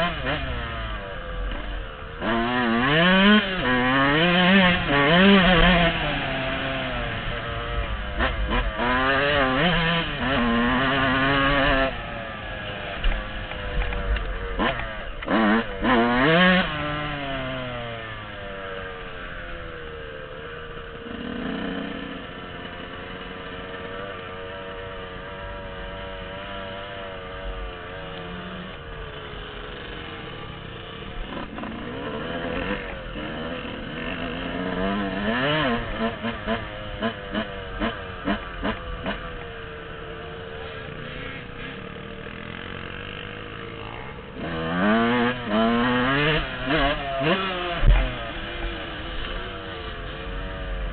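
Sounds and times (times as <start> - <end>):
dirt bike engine revving: 0.0 - 50.9.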